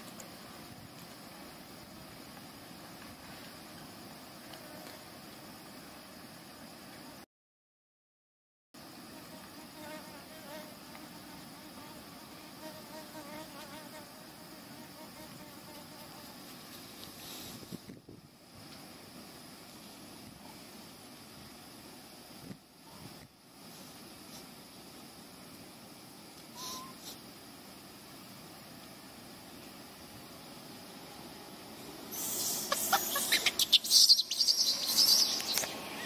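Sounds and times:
insect buzzing: 8.8 - 18.7, 25.9 - 36.0.

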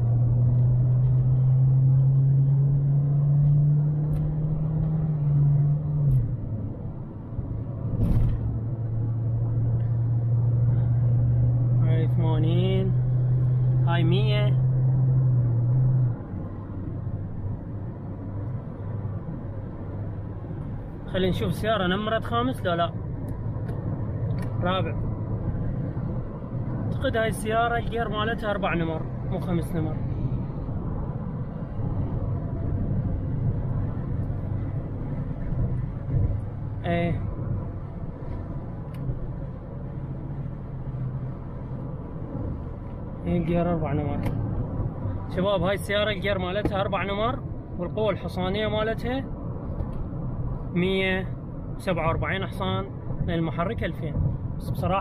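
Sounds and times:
car engine drone: 0.0 - 55.0
road and tyre noise: 0.0 - 55.0.

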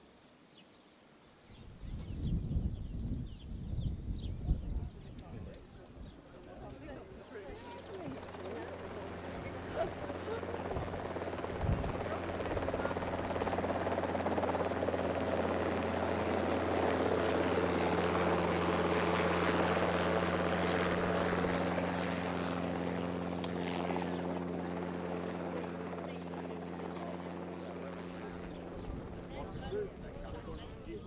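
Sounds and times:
engine drone of passing craft: 7.4 - 31.0.

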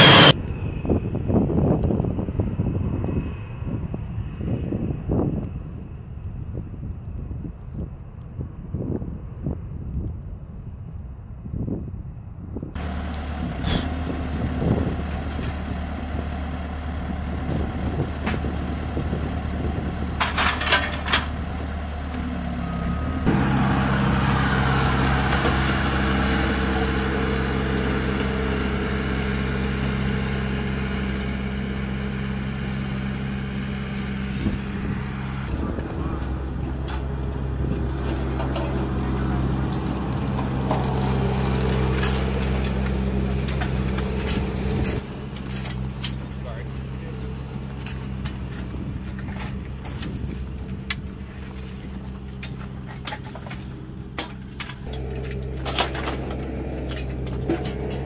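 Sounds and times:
diesel engine running: 0.0 - 6.4, 12.7 - 58.0
low mechanical hum: 0.0 - 58.0.

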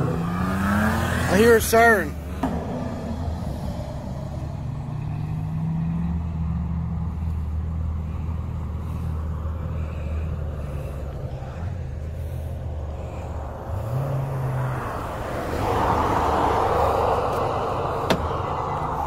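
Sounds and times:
car engine running steadily: 0.0 - 19.0.

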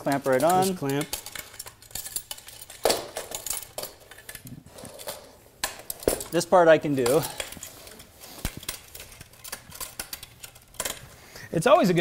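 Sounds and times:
metal tubes knocking and clicking: 0.0 - 11.2.

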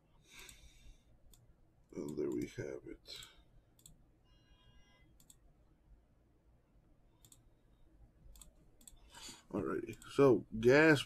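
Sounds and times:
mouse and keyboard clicks: 8.3 - 9.0.

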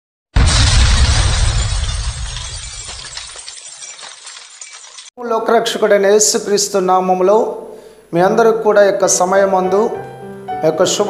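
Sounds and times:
glass shattering with deep boom: 0.4 - 5.1
glass fragments tinkling: 0.5 - 5.2.

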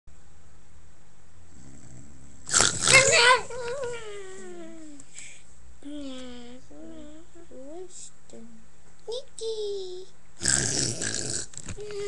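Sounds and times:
boy fake snoring: 1.6 - 3.4, 10.4 - 12.0.

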